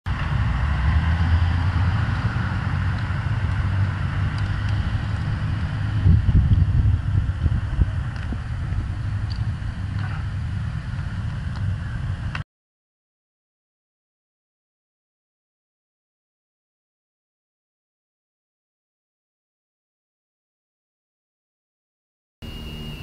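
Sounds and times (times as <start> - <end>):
road and traffic noise: 0.1 - 12.4, 22.4 - 23.0
wind rumble on microphone: 0.1 - 12.4.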